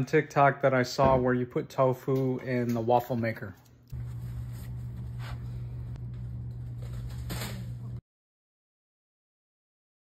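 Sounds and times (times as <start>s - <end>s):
steady low hum: 3.8s - 8.0s
paper towel rustling and squishing: 3.9s - 7.8s.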